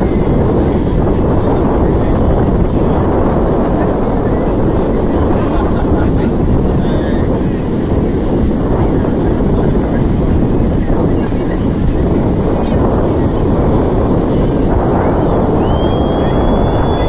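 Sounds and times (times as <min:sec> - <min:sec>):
crowd voices on beach: 0:00.0 - 0:17.0
wind buffeting microphone: 0:00.0 - 0:17.0.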